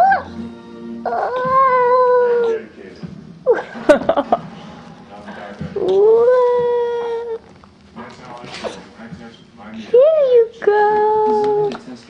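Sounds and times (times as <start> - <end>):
dog yelping: 0.0 - 0.3, 1.1 - 2.6
dog howling: 0.0 - 0.4, 1.0 - 2.6, 5.8 - 7.4.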